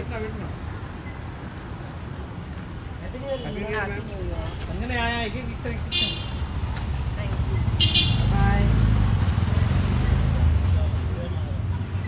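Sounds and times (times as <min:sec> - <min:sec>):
street traffic rumble: 0:00.0 - 0:12.0
vehicle engine: 0:05.4 - 0:12.0.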